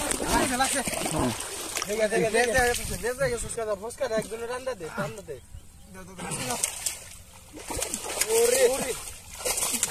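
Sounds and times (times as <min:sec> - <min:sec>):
water splashing: 0:00.0 - 0:05.3, 0:06.0 - 0:09.9
voices calling out: 0:00.0 - 0:09.9.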